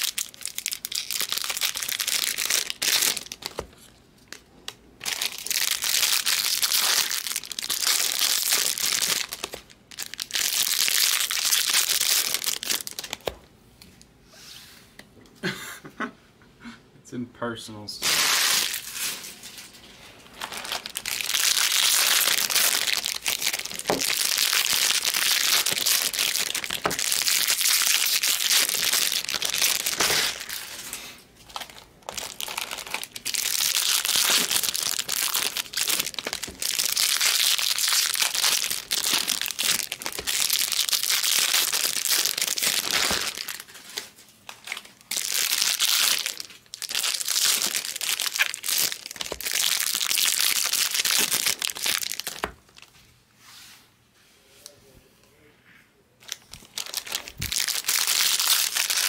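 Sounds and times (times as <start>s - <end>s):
foil wrappers crinkling and tearing: 0.0s - 3.6s, 5.0s - 13.3s, 18.0s - 52.9s, 56.2s - 59.0s.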